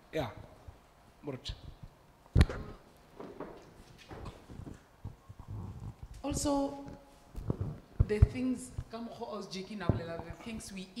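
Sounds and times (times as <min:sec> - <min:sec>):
microphone handling thuds: 0:07.4 - 0:09.0, 0:09.8 - 0:10.7.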